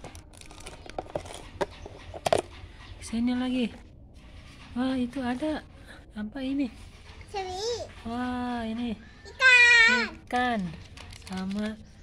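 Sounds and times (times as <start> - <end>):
wrapper crinkling: 0.0 - 1.6, 10.8 - 11.8.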